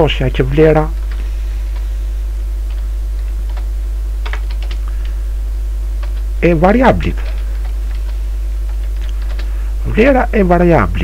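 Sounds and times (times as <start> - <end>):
low mains hum: 0.0 - 11.0
computer keyboard typing: 2.6 - 5.1, 6.0 - 6.3, 7.2 - 9.5.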